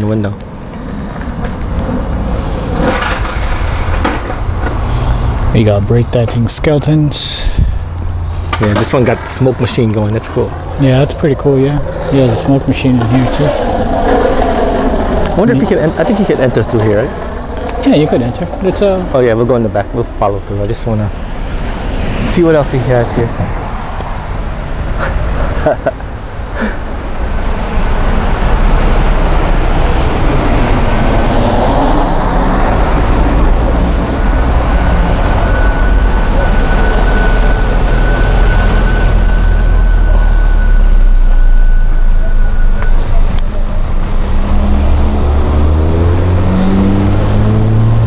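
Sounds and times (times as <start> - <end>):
vehicle engine rumbling: 0.0 - 48.0
thin steady whine: 33.4 - 44.2.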